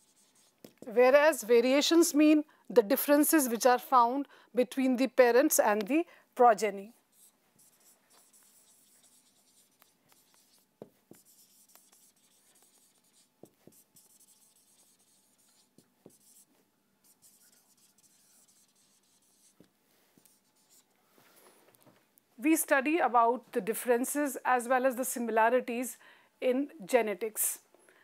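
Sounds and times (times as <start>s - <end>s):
marker writing on whiteboard: 0.0s - 1.0s, 7.1s - 21.0s
marker tip ticks: 8.1s - 13.0s.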